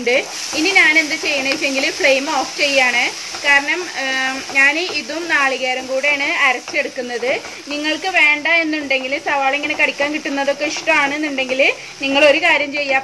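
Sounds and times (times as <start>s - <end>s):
faint sizzle of frying: 0.0s - 13.0s.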